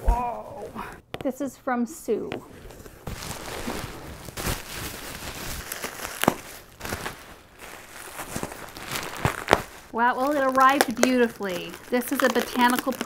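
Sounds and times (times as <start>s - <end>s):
bubble wrap rustling and crinkling: 2.5s - 13.0s
sharp crackles of bubble wrap: 2.8s - 13.0s.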